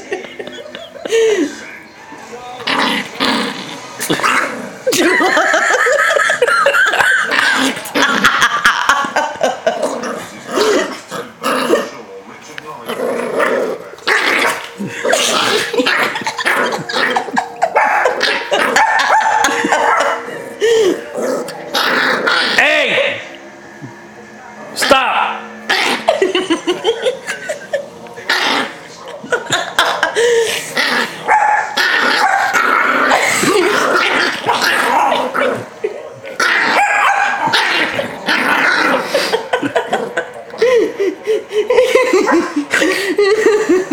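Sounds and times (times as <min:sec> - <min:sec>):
small dog growling and barking: 0:02.6 - 0:05.0, 0:07.2 - 0:09.0, 0:12.8 - 0:20.3, 0:20.9 - 0:22.7, 0:25.6 - 0:26.4, 0:28.2 - 0:40.2.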